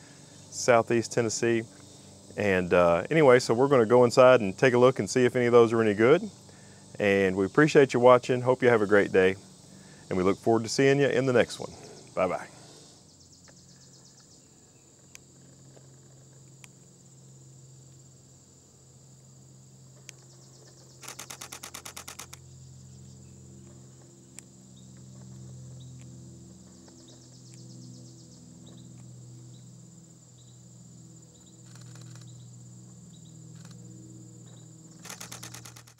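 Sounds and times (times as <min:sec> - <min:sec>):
insect drone: 0:00.0 - 0:35.9
hummingbird wing hum: 0:19.6 - 0:35.9
rapid rattling burst: 0:21.0 - 0:22.4, 0:35.0 - 0:35.9.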